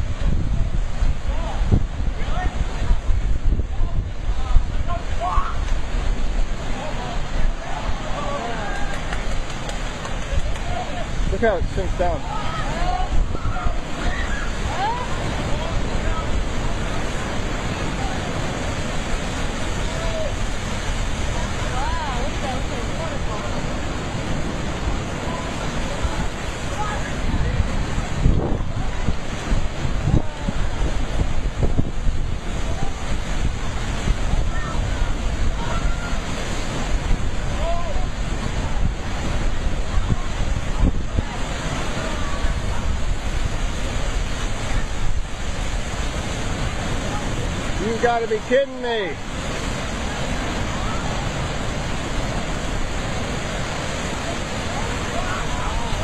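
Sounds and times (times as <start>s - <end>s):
sea waves surging over rocks: 0.0s - 56.0s
wind buffeting microphone: 0.0s - 56.0s.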